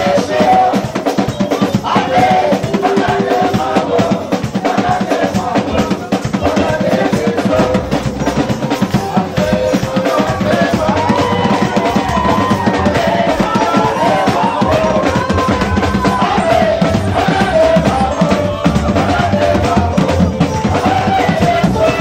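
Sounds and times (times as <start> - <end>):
drum kit driving beat: 0.0 - 22.0
live band music: 0.0 - 22.0.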